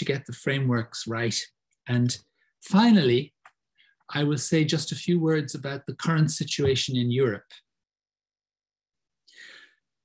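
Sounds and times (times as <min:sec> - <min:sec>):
man breathing softly: 0:09.3 - 0:09.9.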